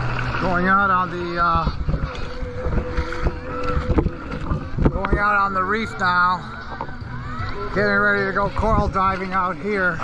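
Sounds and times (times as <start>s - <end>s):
feet splashing in shallow water: 0.0s - 10.0s
wind on microphone: 0.0s - 10.0s.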